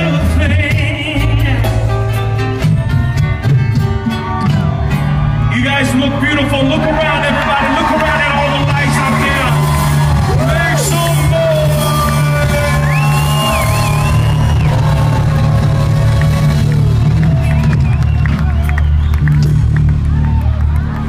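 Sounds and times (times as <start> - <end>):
live band music: 0.0 - 21.0
crowd whooping and cheering: 3.9 - 21.0.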